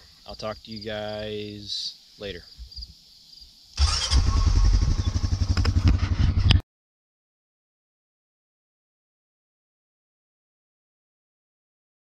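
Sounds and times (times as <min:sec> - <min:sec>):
small engine running: 0:03.8 - 0:06.6.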